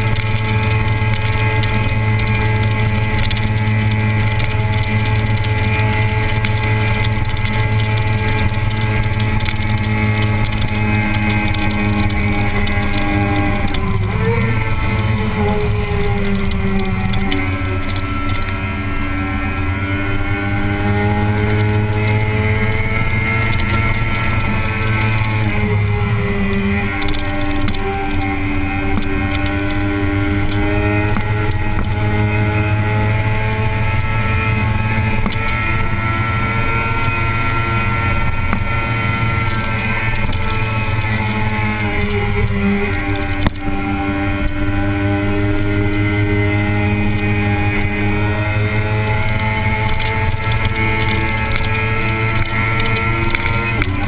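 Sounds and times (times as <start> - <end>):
motorcycle engine cruising: 0.0 - 54.0.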